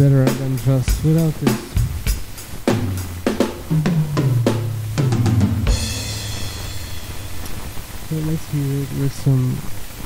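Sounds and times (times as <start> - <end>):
low steady hum: 1.6 - 8.8
crash cymbal ringing: 2.7 - 7.9.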